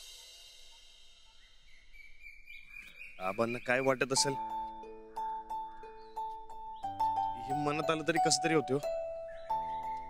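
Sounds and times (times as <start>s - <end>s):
faint outdoor background noise: 0.0s - 10.0s
high bird chirps: 0.0s - 10.0s.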